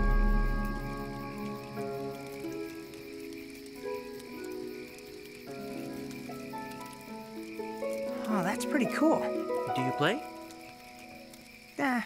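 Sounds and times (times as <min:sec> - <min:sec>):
slow lyre melody: 0:00.0 - 0:11.8.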